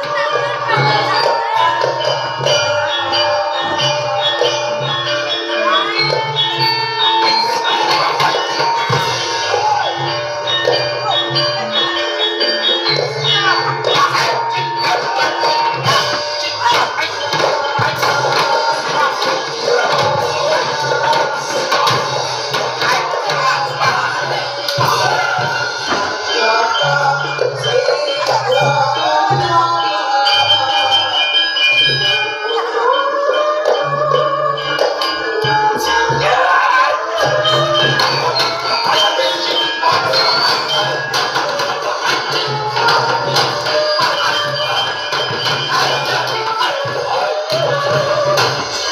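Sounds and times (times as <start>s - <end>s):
gamelan metallophones ringing: 0.0s - 48.9s.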